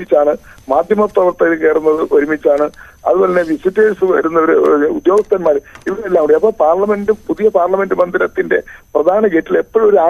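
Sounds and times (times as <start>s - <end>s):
man speaking over telephone: 0.0s - 10.0s.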